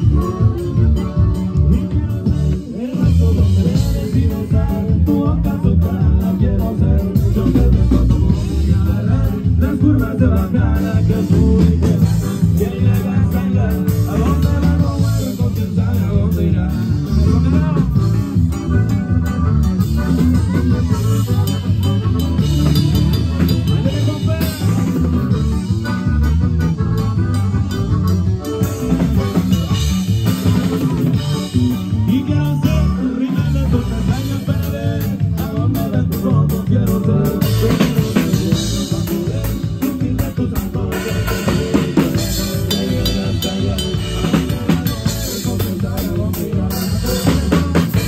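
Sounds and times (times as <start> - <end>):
drum kit playing: 0.0 - 48.0
electric bass line: 0.0 - 48.0
live band music: 0.0 - 48.0.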